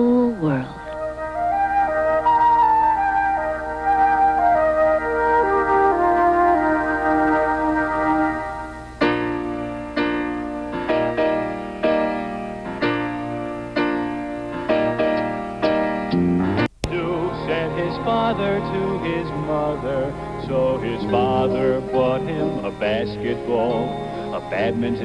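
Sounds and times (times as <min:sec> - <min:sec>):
sharp chords in lilting rhythm: 0:00.0 - 0:25.0
solo flute melody: 0:00.9 - 0:09.6.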